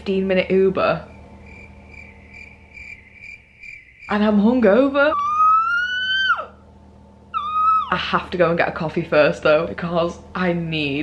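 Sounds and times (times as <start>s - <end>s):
woman's high-pitched squeal: 5.0s - 6.6s, 7.4s - 8.0s.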